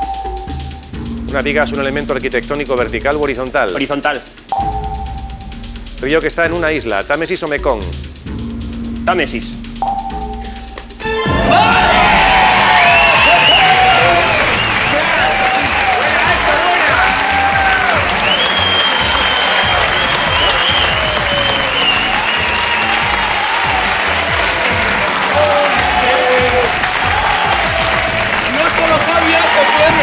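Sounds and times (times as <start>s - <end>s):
background music: 0.0s - 30.0s
audience applauding and cheering: 11.0s - 30.0s
people shouting: 11.1s - 30.0s.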